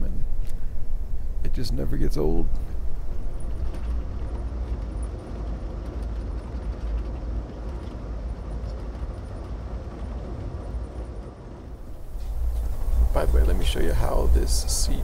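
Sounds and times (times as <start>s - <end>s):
train rumbling on track: 0.0s - 15.0s.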